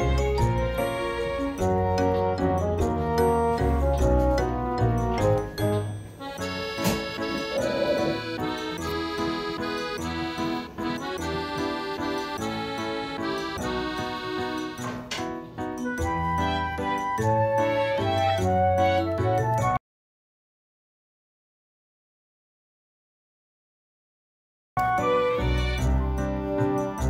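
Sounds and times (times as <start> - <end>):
light background music: 0.0 - 19.8, 24.8 - 27.0.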